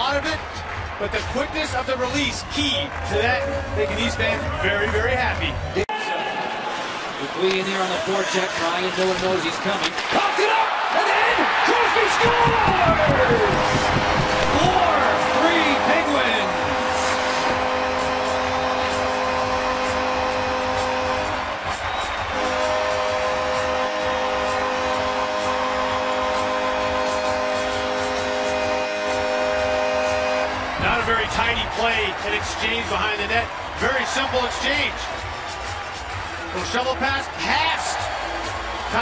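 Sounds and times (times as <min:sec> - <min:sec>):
crowd cheering: 0:00.0 - 0:39.0.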